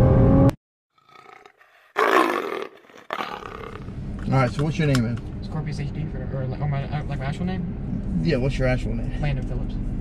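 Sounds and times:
car engine at high revs: 0.0s - 0.6s.

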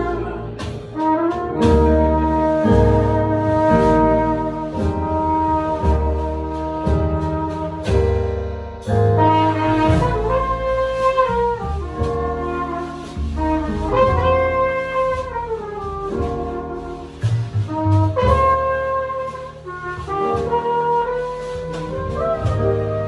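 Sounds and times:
drums: 0.0s - 23.0s
flugelhorn melody: 0.0s - 23.0s
piano: 0.0s - 23.0s
plucked upright bass: 0.0s - 23.0s.

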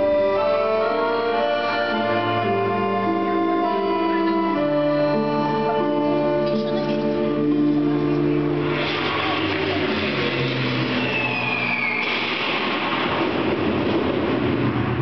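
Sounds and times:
held keyboard chords: 0.0s - 10.8s
noisy rushing music passage: 5.5s - 15.0s
short falling whine: 8.3s - 15.0s.

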